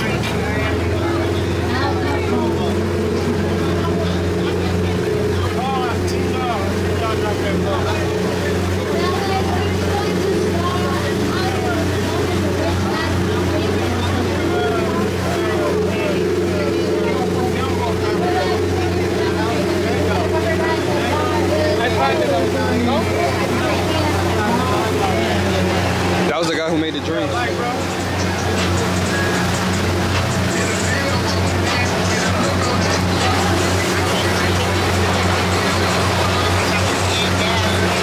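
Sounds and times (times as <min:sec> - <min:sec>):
boat engine droning: 0:00.0 - 0:38.0
indistinct voices: 0:00.0 - 0:38.0
music: 0:27.4 - 0:38.0.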